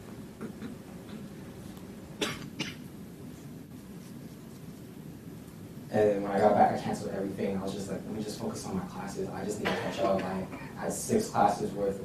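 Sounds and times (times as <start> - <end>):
low room hum: 0.0 - 12.0
person coughing: 2.2 - 2.8, 9.6 - 10.7.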